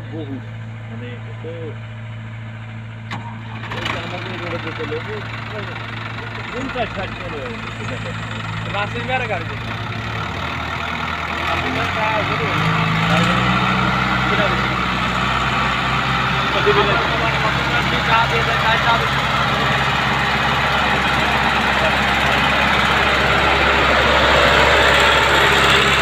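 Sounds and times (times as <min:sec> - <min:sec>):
excavator engine idling: 0:00.0 - 0:26.0
tractor diesel engine idling: 0:00.0 - 0:26.0.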